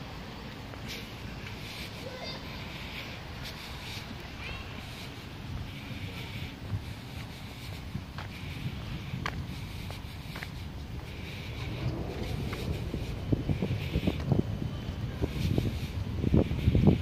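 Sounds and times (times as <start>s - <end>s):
wind noise on microphone: 0.0s - 17.0s
footsteps on dirt path: 0.5s - 17.0s.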